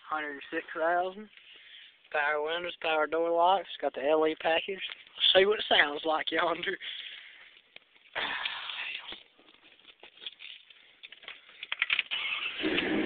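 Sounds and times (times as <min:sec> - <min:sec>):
engine starting and idling: 0:11.8 - 0:13.0.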